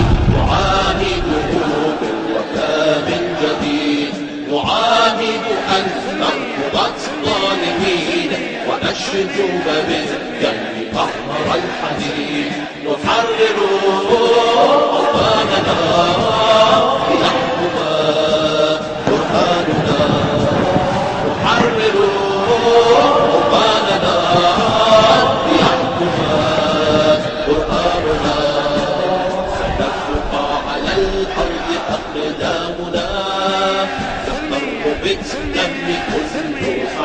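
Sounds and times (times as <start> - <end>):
chorus chanting an anthem: 0.0 - 37.0.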